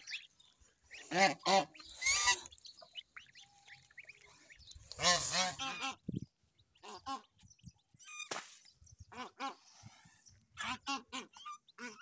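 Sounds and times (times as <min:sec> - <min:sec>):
goslings peeping: 0:00.0 - 0:08.3, 0:09.0 - 0:12.0
geese honking: 0:00.9 - 0:06.1.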